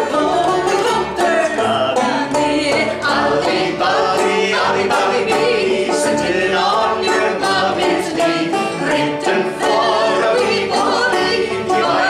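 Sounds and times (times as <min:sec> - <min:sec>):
people singing in harmony: 0:00.0 - 0:12.0.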